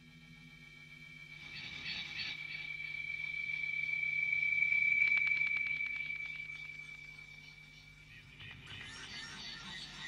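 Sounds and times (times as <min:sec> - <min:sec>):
high-pitched ringing tone: 0:00.0 - 0:10.0.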